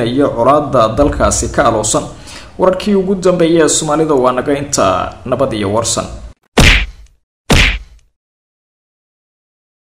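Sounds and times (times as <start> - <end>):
sharp impact hits with deep thud: 1.0 - 2.2, 6.6 - 8.0.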